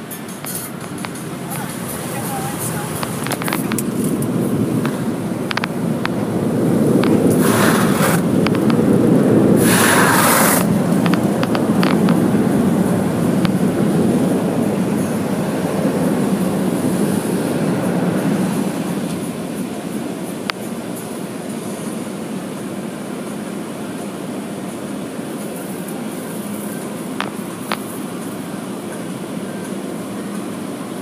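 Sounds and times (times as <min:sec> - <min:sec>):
car wash rumbling over car body: 0:00.0 - 0:31.0
scattered clicks: 0:02.9 - 0:06.2, 0:07.0 - 0:07.4, 0:08.1 - 0:08.8, 0:10.6 - 0:12.2
short hissing bursts: 0:09.6 - 0:10.7.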